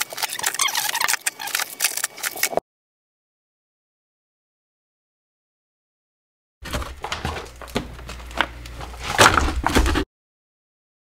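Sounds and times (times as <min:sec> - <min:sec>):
plastic crinkling: 0:00.0 - 0:02.6
packages knocking together: 0:06.6 - 0:10.1.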